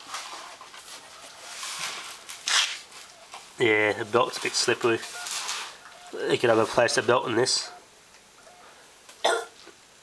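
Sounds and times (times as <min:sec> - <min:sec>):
cassette deck hiss: 0:00.0 - 0:10.0.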